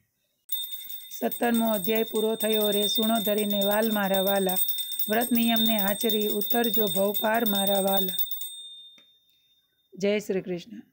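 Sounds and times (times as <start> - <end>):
thin high ringing tone: 0.5 - 10.0.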